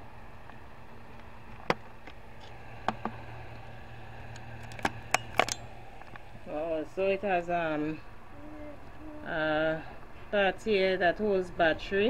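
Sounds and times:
steady low hum: 0.0 - 12.0
plastic mirror clicks and taps: 2.9 - 3.2.

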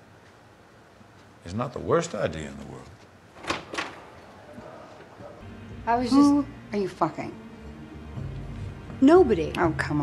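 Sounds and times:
woman's voice: 5.9 - 7.4, 9.0 - 10.0.

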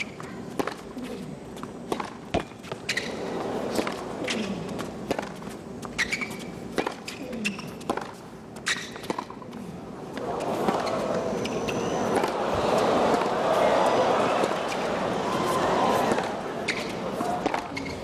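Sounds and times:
crowd noise: 0.0 - 18.0
racket hitting tennis ball: 0.0 - 18.0
tennis ball bouncing: 0.0 - 18.0.

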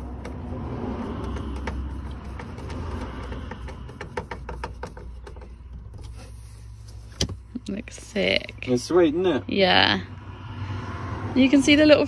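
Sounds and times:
rustling and handling noise: 0.0 - 8.2.

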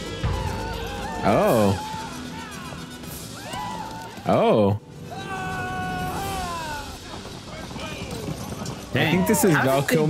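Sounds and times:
horse hooves clip-clopping: 5.1 - 10.0.

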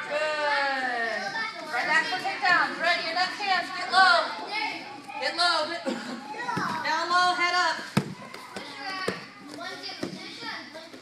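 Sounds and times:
children shouting and chattering: 0.0 - 11.0.

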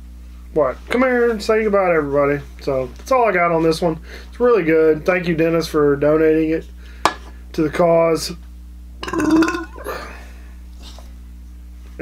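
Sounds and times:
man burping: 9.0 - 10.1.

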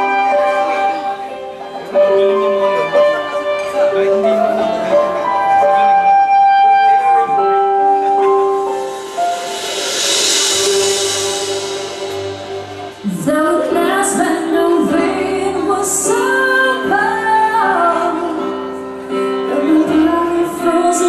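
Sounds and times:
pop band playing a ballad: 0.0 - 21.0
cymbal crashes: 8.2 - 14.6
woman singing: 13.0 - 18.8, 19.4 - 21.0.

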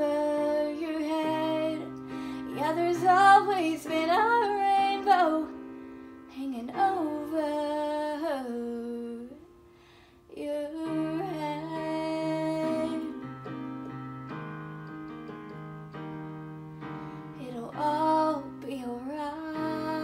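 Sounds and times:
woman singing: 0.0 - 9.5, 10.3 - 13.4, 17.4 - 20.0
piano chords on electronic keyboard: 0.0 - 20.0.

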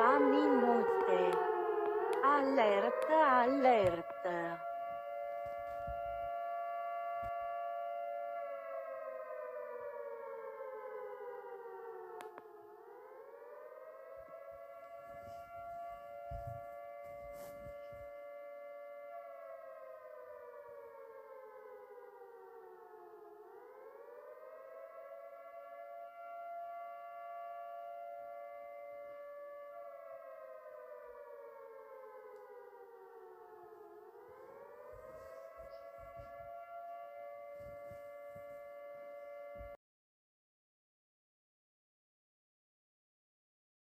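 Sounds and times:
siren wailing: 0.0 - 39.8.

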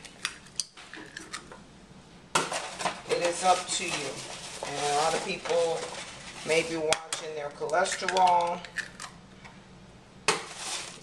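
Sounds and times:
low steady hum: 0.0 - 11.0
egg carton rustling: 2.5 - 6.9, 10.3 - 11.0.

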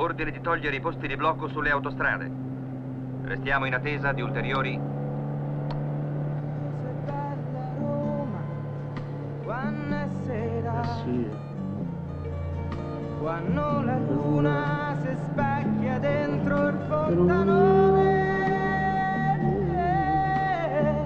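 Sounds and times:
car engine hum: 0.0 - 21.0
car radio tuning: 0.0 - 21.0.

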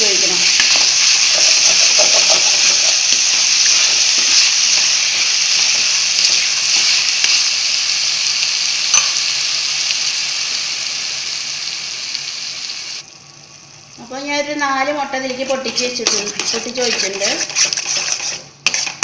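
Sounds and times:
spatula stirring: 0.0 - 7.4, 15.3 - 19.0
vegetables sizzling in a pan: 0.0 - 19.0.

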